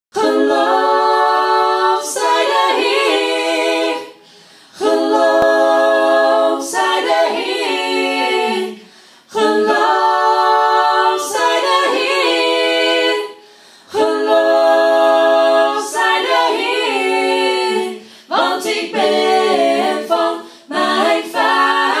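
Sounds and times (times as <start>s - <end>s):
voices singing a cappella in harmony: 0.1s - 22.0s.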